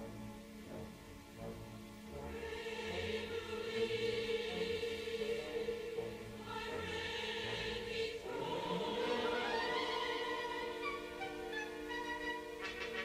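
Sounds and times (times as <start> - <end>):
orchestra playing: 0.0 - 13.0
chorus singing: 2.1 - 13.0.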